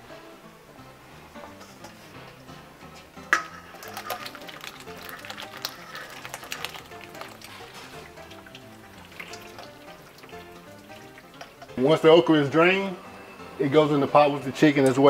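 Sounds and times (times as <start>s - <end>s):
background music: 0.0s - 15.0s
pot clanking: 3.2s - 12.0s
water splashing: 3.3s - 11.8s
water poured into sink strainer: 3.4s - 11.7s.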